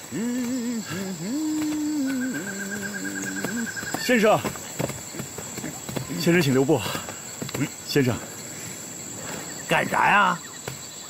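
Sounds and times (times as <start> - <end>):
man singing long held notes: 0.0 - 4.0.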